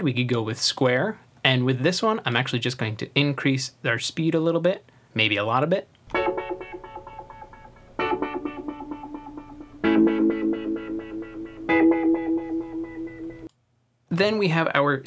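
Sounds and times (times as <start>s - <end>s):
chopped pulsing piano chords: 6.1s - 13.5s.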